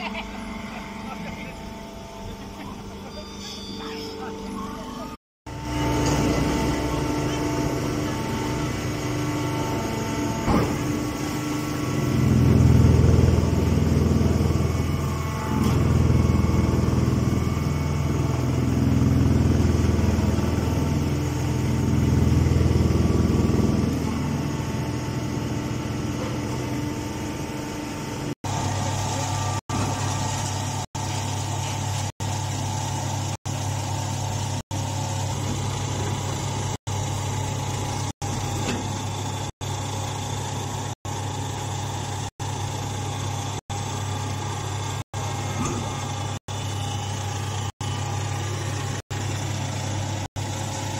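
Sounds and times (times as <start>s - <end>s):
baling machine humming: 0.0s - 50.9s.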